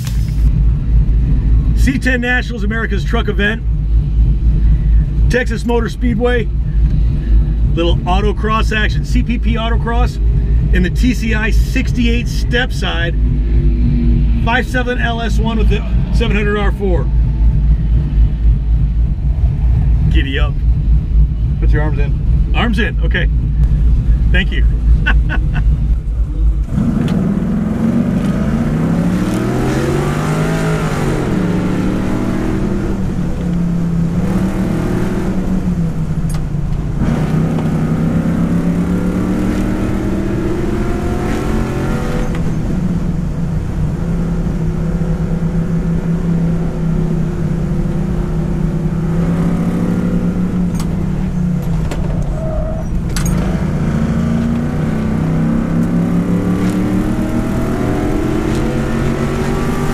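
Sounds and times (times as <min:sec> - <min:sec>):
engine revving and accelerating: 0:07.0 - 0:20.4, 0:24.8 - 0:59.9.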